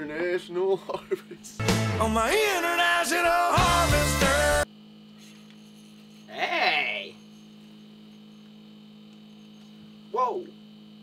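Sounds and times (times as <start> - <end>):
low electrical hum: 0.0 - 1.6, 4.6 - 11.0.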